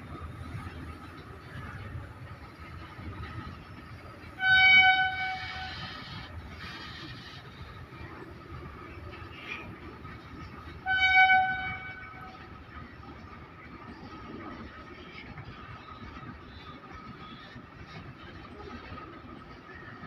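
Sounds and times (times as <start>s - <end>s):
goods train rumbling past: 0.0s - 20.0s
train horn blasts: 4.3s - 6.3s, 10.7s - 12.4s.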